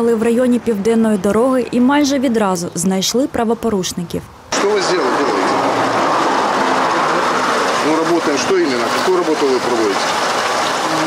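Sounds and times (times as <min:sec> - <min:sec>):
sewage rushing through hose: 0:04.5 - 0:11.0.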